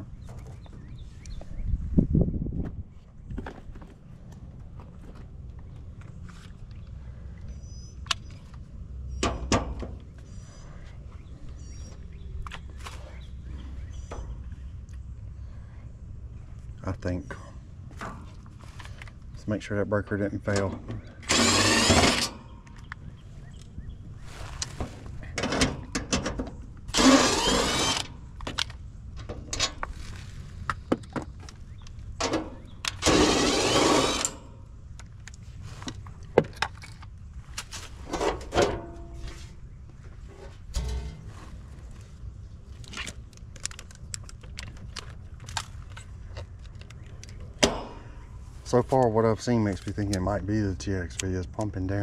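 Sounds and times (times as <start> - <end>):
steady low rumble: 0.0 - 52.0
loud rasping bursts: 21.2 - 22.4, 26.9 - 28.2, 32.9 - 34.6.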